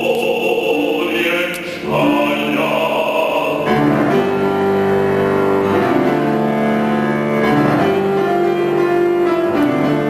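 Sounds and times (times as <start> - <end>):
piano: 0.0 - 10.0.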